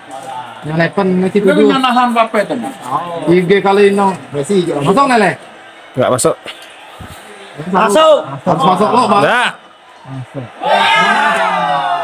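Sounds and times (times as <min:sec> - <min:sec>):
man shouting a long cheer: 0:10.4 - 0:12.0.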